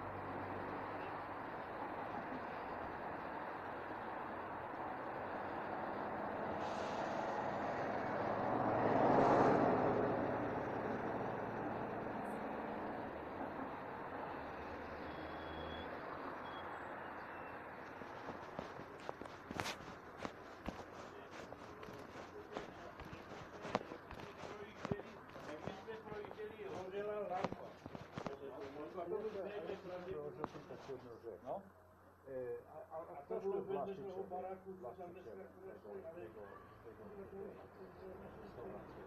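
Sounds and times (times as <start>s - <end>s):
vehicle passing: 0.0s - 31.1s
footsteps clicking: 17.8s - 31.0s.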